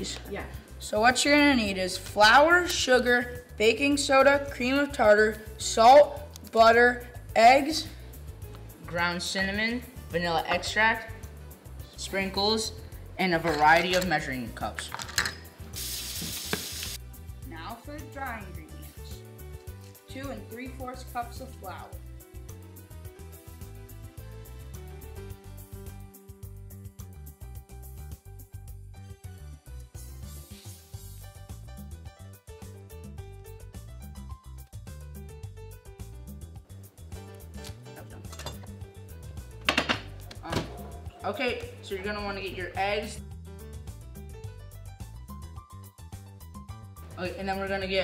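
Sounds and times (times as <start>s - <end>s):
background music with a beat: 13.5s - 47.2s
kitchen faucet running: 15.7s - 17.0s
sharp kitchen knocks: 39.6s - 40.8s.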